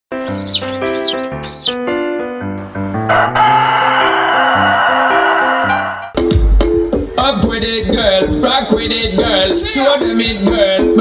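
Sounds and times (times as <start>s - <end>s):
rooster crowing: 3.0s - 6.1s.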